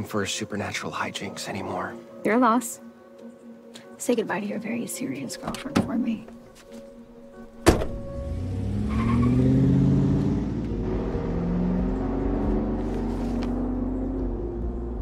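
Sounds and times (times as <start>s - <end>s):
car door shutting: 7.4s - 8.3s
car engine accelerating: 7.9s - 15.0s.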